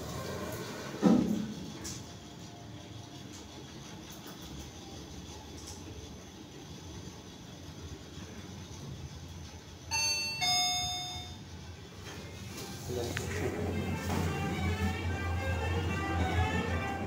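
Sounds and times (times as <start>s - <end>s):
elevator low hum: 0.0s - 17.0s.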